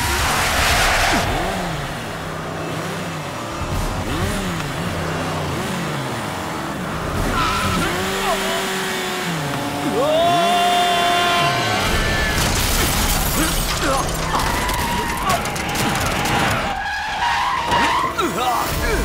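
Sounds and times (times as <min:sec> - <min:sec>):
motorcycle engine revving: 0:00.0 - 0:12.8.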